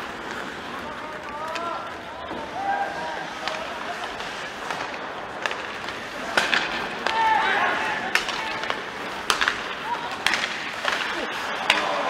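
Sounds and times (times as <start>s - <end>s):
hockey sticks and puck clacking: 0.0s - 12.0s
skates scraping ice: 0.0s - 12.0s
player shouting: 7.0s - 8.7s.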